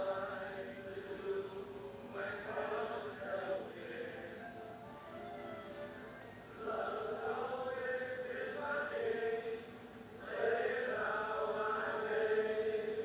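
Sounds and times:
chant-like singing on television: 0.0 - 13.0.

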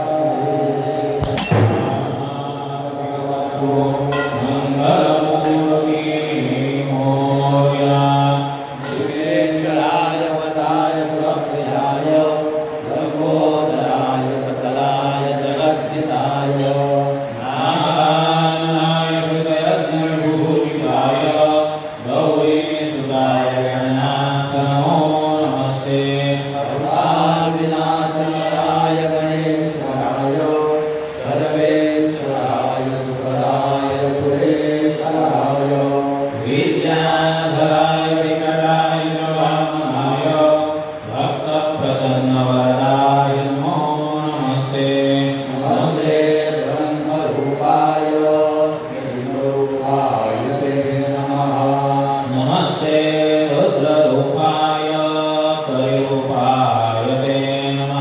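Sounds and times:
devotional chanting: 0.0 - 58.0.

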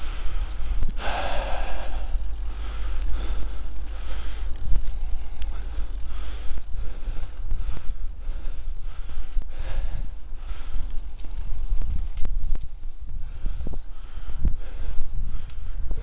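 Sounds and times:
bicycle tyres rumbling on tarmac: 0.0 - 16.0.

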